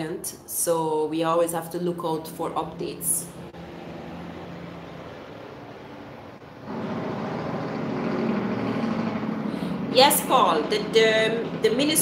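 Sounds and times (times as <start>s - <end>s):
motor vehicle engine: 2.2s - 12.0s.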